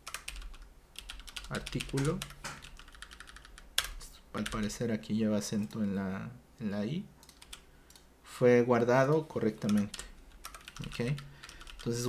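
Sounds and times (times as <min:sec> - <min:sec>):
keyboard typing: 0:00.0 - 0:04.8, 0:07.2 - 0:08.0, 0:09.1 - 0:12.0.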